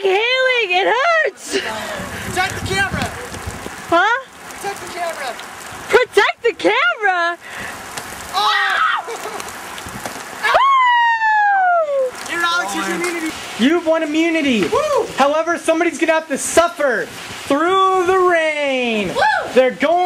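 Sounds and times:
wind noise on microphone: 1.5 - 4.2, 9.7 - 10.3
teenagers shouting: 8.3 - 9.5, 10.4 - 13.4.

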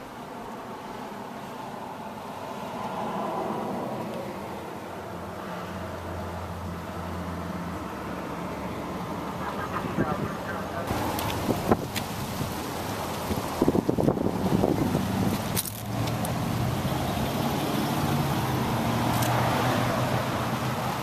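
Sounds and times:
car engine idling: 7.7 - 19.3.

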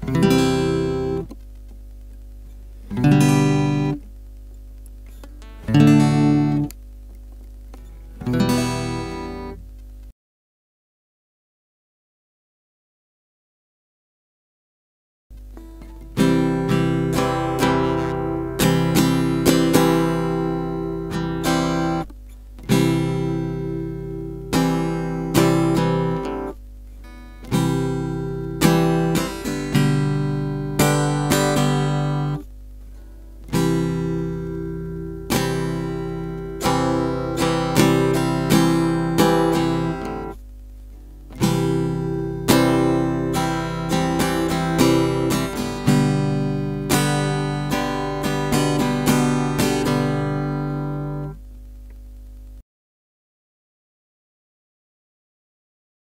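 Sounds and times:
acoustic guitar strumming: 0.0 - 1.4, 2.8 - 4.1, 5.0 - 6.8, 7.7 - 9.6, 15.6 - 40.4, 41.0 - 51.4.

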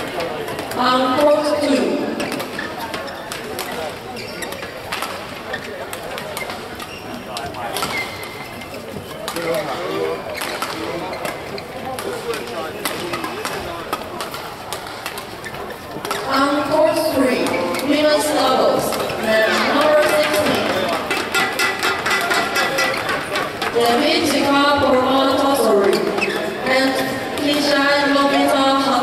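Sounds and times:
murmur of spectators chatter: 0.0 - 29.0
rackets hitting shuttlecock: 17.3 - 24.0.

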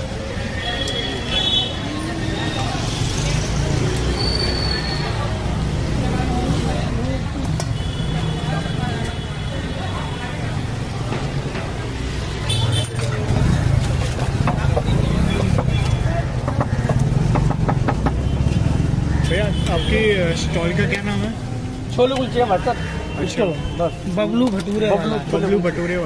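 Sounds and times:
traffic rumble: 0.0 - 26.0.

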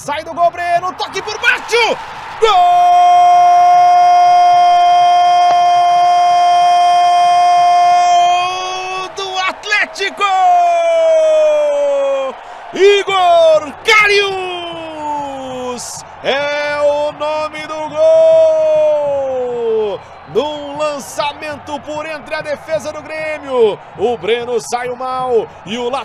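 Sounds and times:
commentator shouting goal: 0.0 - 26.0.

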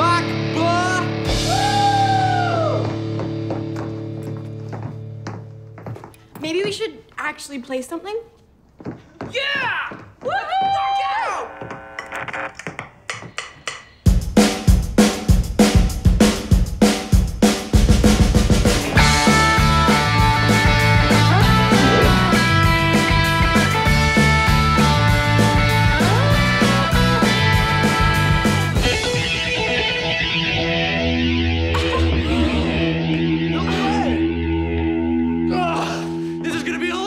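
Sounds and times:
low band notes: 0.0 - 5.8, 18.0 - 37.0
electric guitar: 0.0 - 6.2, 18.4 - 36.8
rock drum kit pounding beat: 0.2 - 5.2, 12.7 - 31.0.

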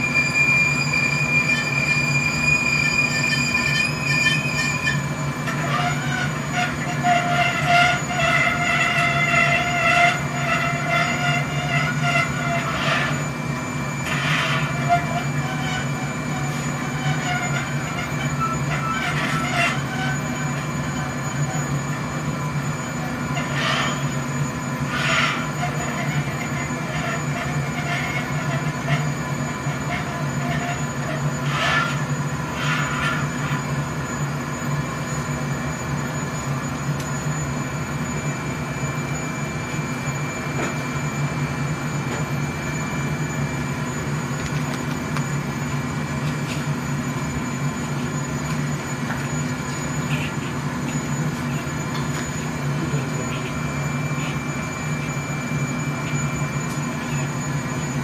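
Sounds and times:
furnace roaring with blower whine: 0.0 - 58.0.

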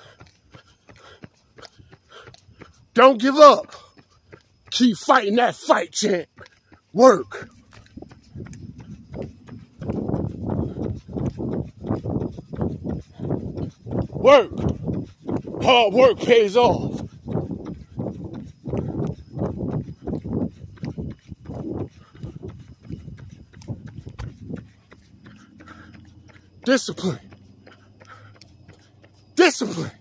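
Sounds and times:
runner breathing: 0.0 - 30.0
runner's footfalls: 0.0 - 30.0.

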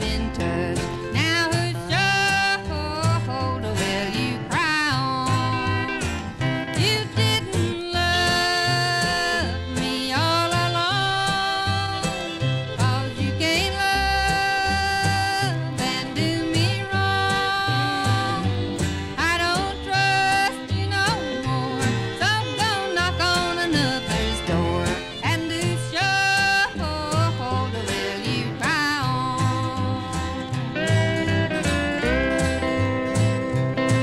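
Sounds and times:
country band playing: 0.0 - 34.0
fiddles: 0.0 - 34.0
steel guitar sliding notes: 0.0 - 34.0.

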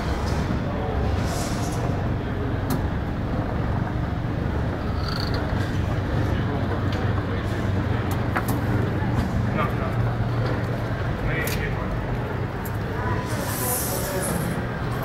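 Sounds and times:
faint background voices: 0.0 - 15.0
low hum of indoor space: 0.0 - 15.0.

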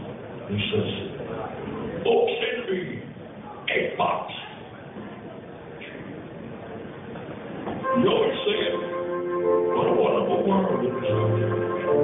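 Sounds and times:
hall room noise: 0.0 - 12.0
band playing held notes: 7.8 - 12.0.

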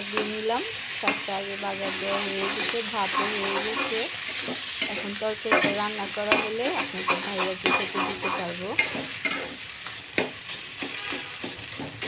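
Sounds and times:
greens sizzling in oil: 0.0 - 12.0
metal spatula scraping pan: 1.0 - 12.0.

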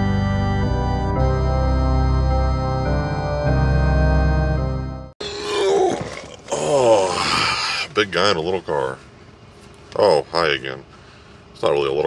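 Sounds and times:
man's wordless vocal sounds: 5.5 - 7.9.

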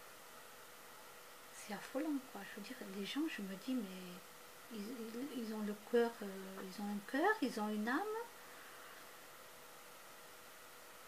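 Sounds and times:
faint hiss with thin hum: 0.0 - 11.0.

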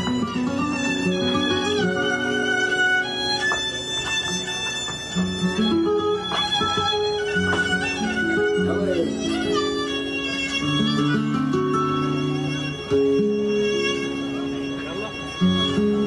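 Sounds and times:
held melody: 0.0 - 16.0
plucked strings: 0.0 - 16.0.

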